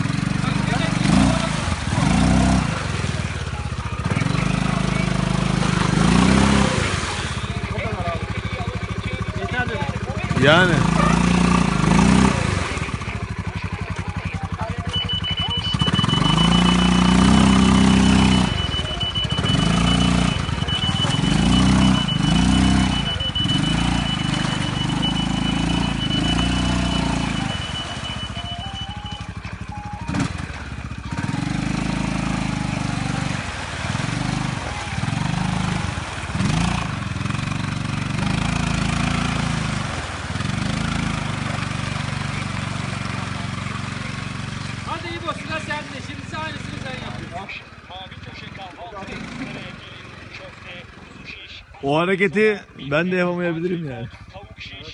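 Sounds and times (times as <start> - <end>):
atv engine revving: 0.0 - 54.4
thin high-pitched tone: 14.8 - 30.2.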